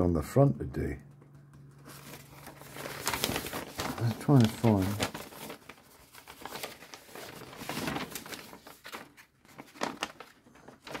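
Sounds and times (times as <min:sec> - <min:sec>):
paper rustling and crinkling: 0:01.7 - 0:11.0.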